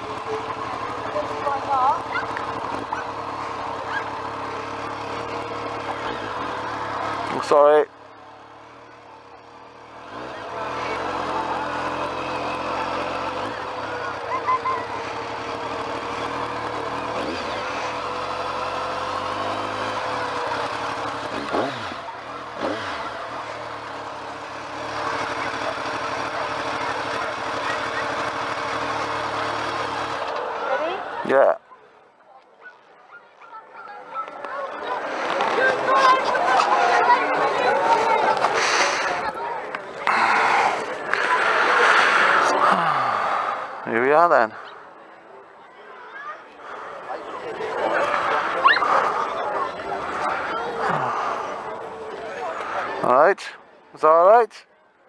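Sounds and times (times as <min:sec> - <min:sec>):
motorcycle engine running: 0:00.0 - 0:54.1
wind and road noise: 0:00.0 - 0:54.8
people chattering: 0:00.0 - 0:55.0.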